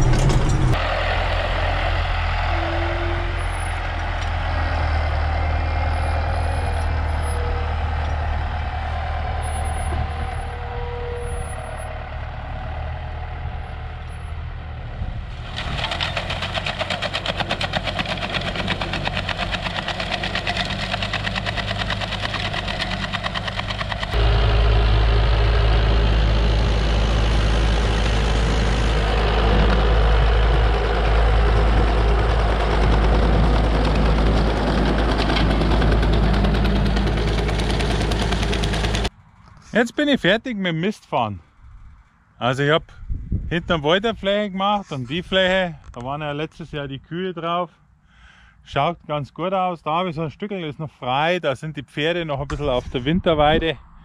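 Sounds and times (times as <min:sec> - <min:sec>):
spreader deep rumble: 0:00.0 - 0:39.1
tractor diesel engine running: 0:00.0 - 0:39.4
fast dense clatter: 0:15.5 - 0:24.4.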